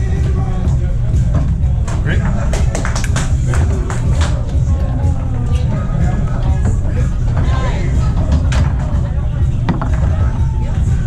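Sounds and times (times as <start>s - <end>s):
foosball ball knocking: 9.6s - 10.4s.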